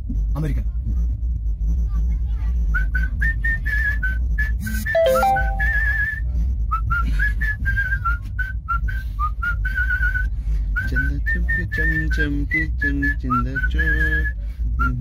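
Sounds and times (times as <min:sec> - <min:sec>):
man whistling a tune: 0:02.8 - 0:12.0, 0:12.6 - 0:15.0
train coach rumble: 0:06.1 - 0:15.0.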